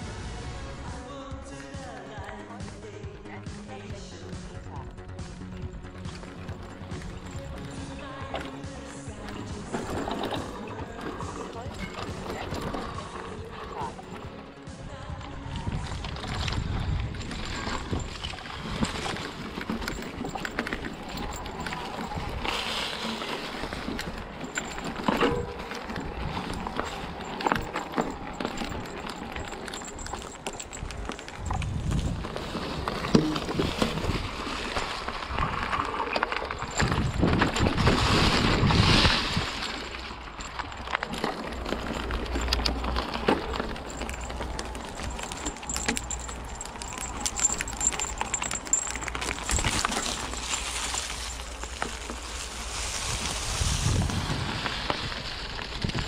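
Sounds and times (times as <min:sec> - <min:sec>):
bike rattling and knocking: 0:01.6 - 0:56.0
bike tyres rolling over dirt: 0:01.8 - 0:56.0
wind rumbling on microphone: 0:09.1 - 0:56.0.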